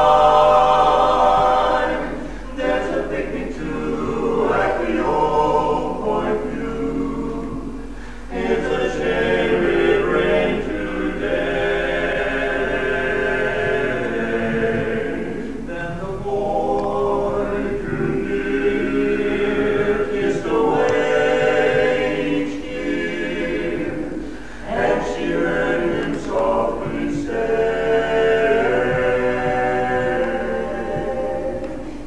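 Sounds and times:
men singing in close harmony: 0:00.0 - 0:32.0.

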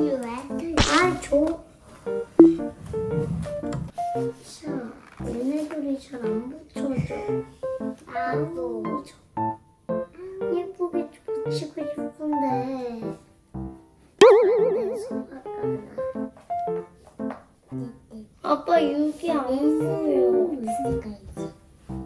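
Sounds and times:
light piano background music: 0:00.0 - 0:22.0
girls talking: 0:18.1 - 0:21.4.

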